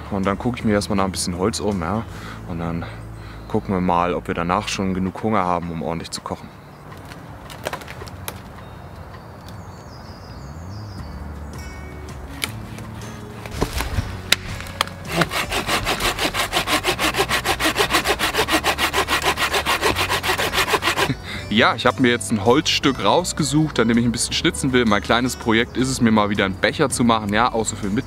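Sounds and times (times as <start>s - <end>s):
hand saw cutting branch: 13.4s - 21.2s.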